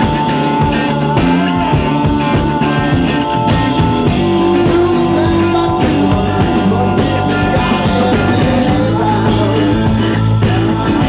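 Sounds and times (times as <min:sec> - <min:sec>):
drums striking steadily: 0:00.0 - 0:11.0
rock band playing live: 0:00.0 - 0:11.0.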